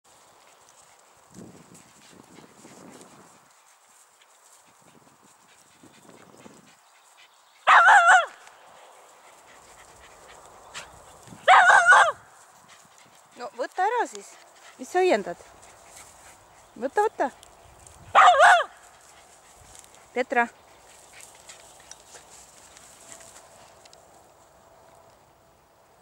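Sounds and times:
dog high-pitched barks: 0:07.6 - 0:08.4, 0:11.4 - 0:12.2, 0:18.1 - 0:18.8.

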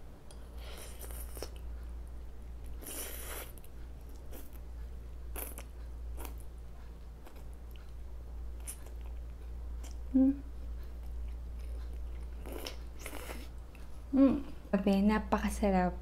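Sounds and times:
person chewing: 0:00.3 - 0:01.7, 0:02.5 - 0:06.5, 0:07.2 - 0:08.0, 0:08.6 - 0:14.0.

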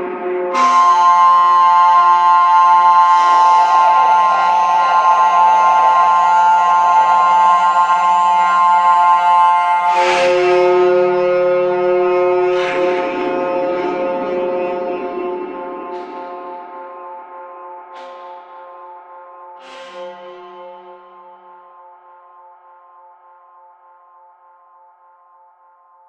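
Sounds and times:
synthesized drone chords: 0:00.0 - 0:22.5.

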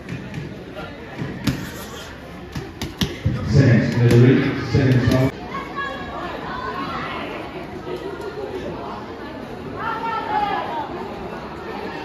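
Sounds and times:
spectators chattering in a hall: 0:00.0 - 0:12.0.

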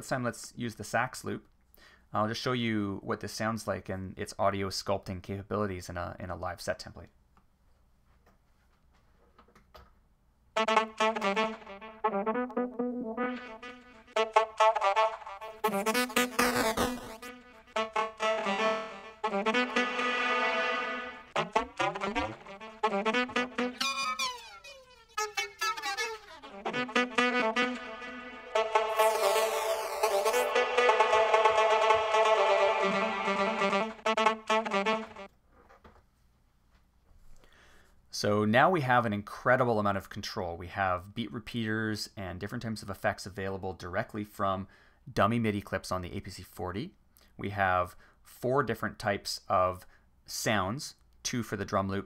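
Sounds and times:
stuttering glitched saxophone loop: 0:10.6 - 0:35.3.

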